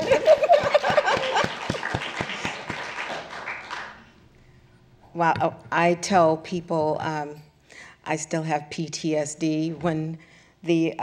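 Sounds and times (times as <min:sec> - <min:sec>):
audience applauding: 0:00.0 - 0:04.1.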